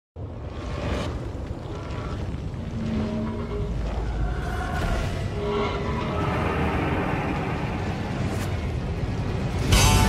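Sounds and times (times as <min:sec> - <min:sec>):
music: 0:09.2 - 0:10.0.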